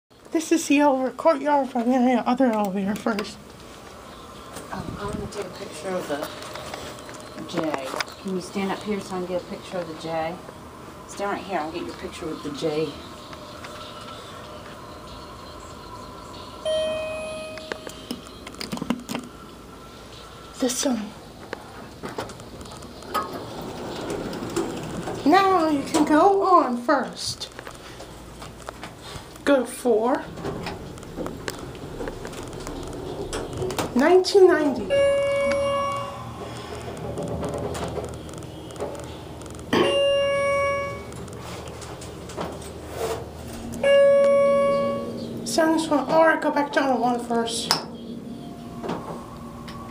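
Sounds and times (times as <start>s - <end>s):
low steady hum: 0.2s - 49.9s
elevator chime ding: 16.5s - 18.2s, 34.5s - 36.4s, 39.7s - 41.1s, 43.7s - 45.5s, 48.4s - 49.9s.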